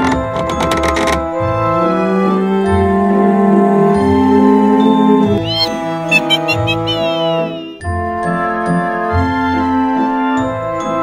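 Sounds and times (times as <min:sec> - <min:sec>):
high gliding notes: 0:05.4 - 0:07.8.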